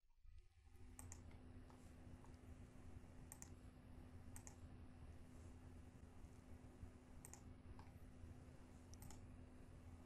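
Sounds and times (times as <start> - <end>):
low hum: 0.1 - 10.0
computer mouse clicks: 0.9 - 2.4, 3.2 - 3.6, 4.3 - 4.7, 7.2 - 8.0, 8.9 - 9.3.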